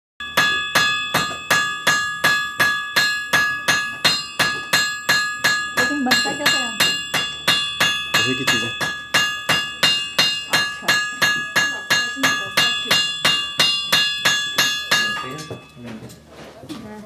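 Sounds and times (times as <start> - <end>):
hammer striking metal on anvil: 0.2 - 15.8.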